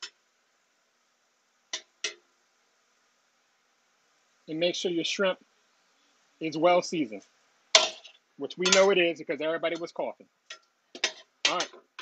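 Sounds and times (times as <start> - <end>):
metal spatulas clinking on griddle: 7.8 - 9.0.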